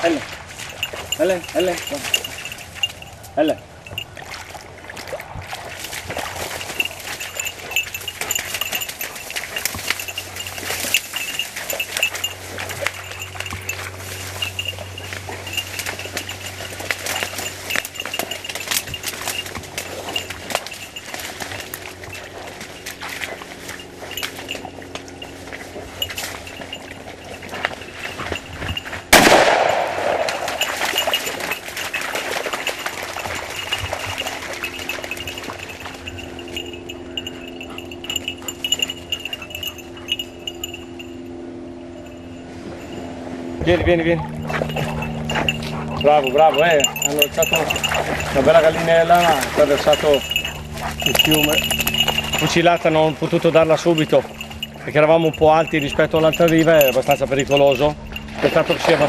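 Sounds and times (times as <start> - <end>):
shotgun shot: 29.2 - 30.4.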